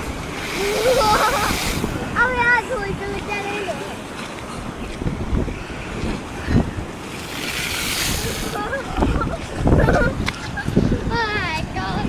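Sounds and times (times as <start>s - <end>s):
sea surf breaking on wall: 0.0s - 4.1s, 6.2s - 9.3s
wind buffeting microphone: 0.0s - 12.0s.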